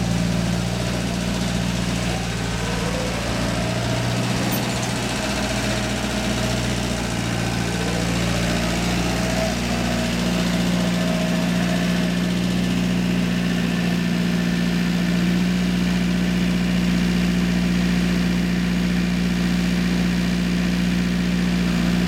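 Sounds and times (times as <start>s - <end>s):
high whine: 0.0s - 14.3s
farm vehicle engine humming: 0.0s - 18.5s.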